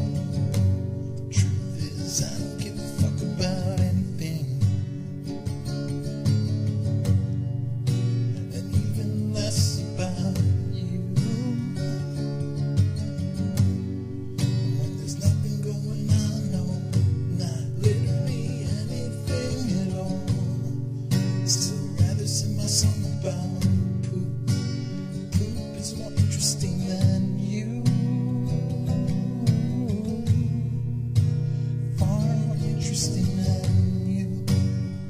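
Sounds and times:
acoustic guitar strumming chords: 0:00.0 - 0:35.0.

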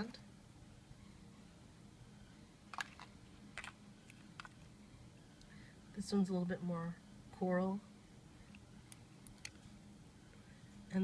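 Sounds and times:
plastic compacts clicking: 0:02.7 - 0:04.6.

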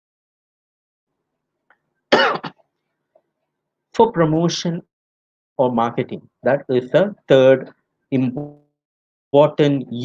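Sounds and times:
man coughing: 0:02.1 - 0:02.6.

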